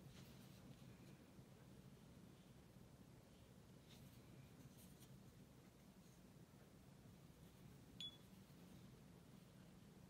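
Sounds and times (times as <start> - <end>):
brush rustling on paper: 0.0 - 6.4
low room hum: 0.0 - 10.0.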